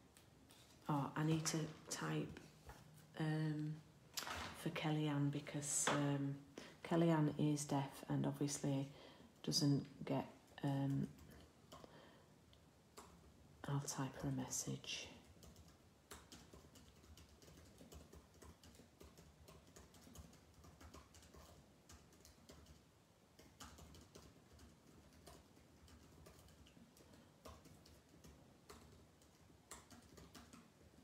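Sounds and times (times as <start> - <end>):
faint keyboard typing: 10.2 - 13.3, 13.9 - 31.0.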